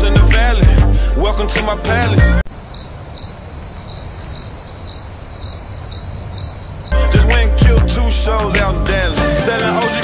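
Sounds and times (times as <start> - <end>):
cricket chirping: 2.5 - 7.0.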